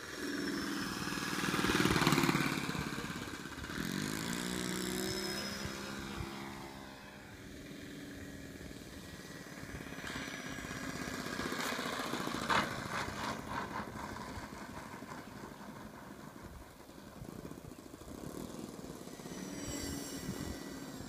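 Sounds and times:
model airplane engine: 0.0s - 21.0s.

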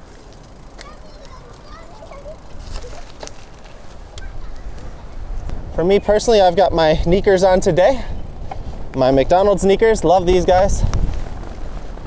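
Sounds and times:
bike clicks: 0.0s - 12.0s
bike tyre rumble: 0.0s - 12.0s
wind rush on microphone: 3.9s - 12.0s.

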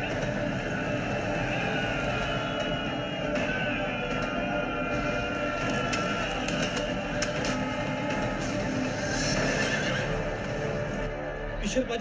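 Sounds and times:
film score music: 0.0s - 12.0s
horses whinnying: 5.6s - 10.6s.

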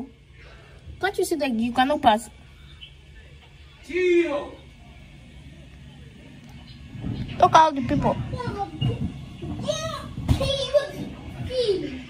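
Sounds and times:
indistinct talking: 0.0s - 12.0s
child's high voice: 9.6s - 12.0s.

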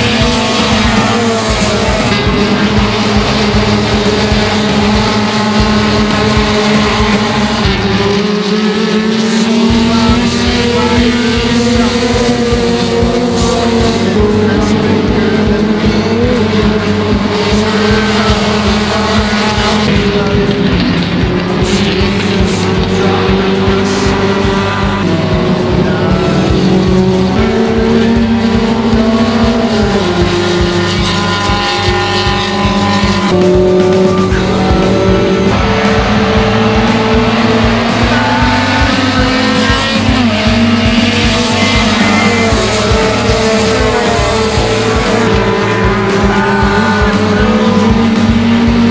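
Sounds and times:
music with steady beat: 0.0s - 48.9s
race car engines at high revs: 0.0s - 48.9s.

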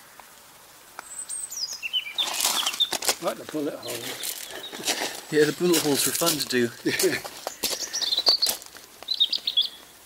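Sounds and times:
bird chirping: 1.0s - 10.0s.

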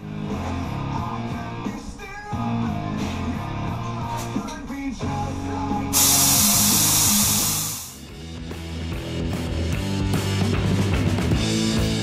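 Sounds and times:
rock music: 0.0s - 12.0s
compressed-air gun hissing: 6.0s - 8.1s.

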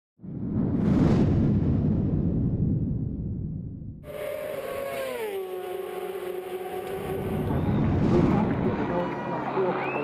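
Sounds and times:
racing motorcycle passing: 4.1s - 7.9s.

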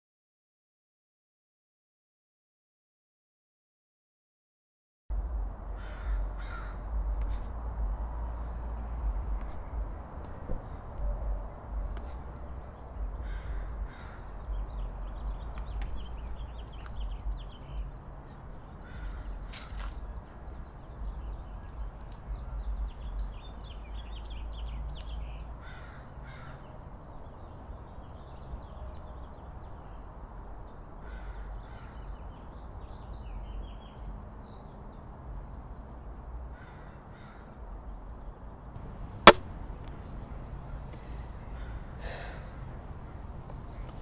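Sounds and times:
low outdoor rumble: 5.1s - 25.6s
bird calling harshly: 5.8s - 6.8s
crows cawing: 5.8s - 6.8s, 13.2s - 14.4s, 18.8s - 19.8s, 25.6s - 26.7s, 31.0s - 32.0s, 36.6s - 37.6s, 41.5s - 42.6s
small birds twittering: 11.8s - 35.3s.

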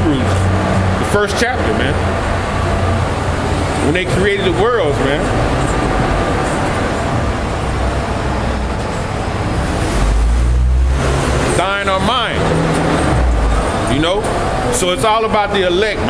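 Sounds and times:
bus engine rumble: 0.0s - 16.0s
traffic noise: 0.0s - 16.0s.

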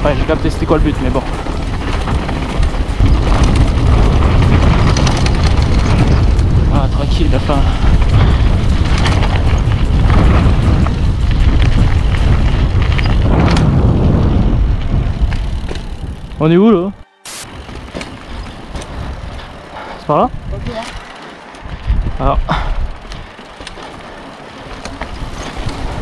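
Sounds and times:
wind buffeting microphone: 0.0s - 16.5s, 17.5s - 26.0s
tyres on gravel: 0.0s - 16.6s, 17.3s - 21.8s, 22.9s - 26.0s.

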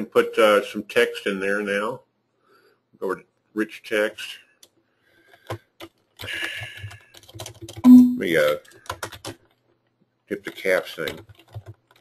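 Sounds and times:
computer keyboard typing: 4.6s - 12.0s.

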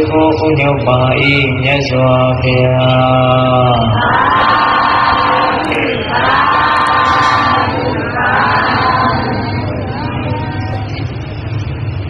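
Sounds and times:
group chanting in unison: 3.4s - 10.9s.

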